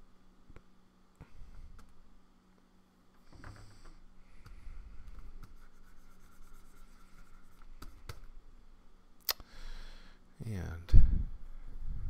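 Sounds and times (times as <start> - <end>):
stylus scratching on pen display: 5.2 - 8.1.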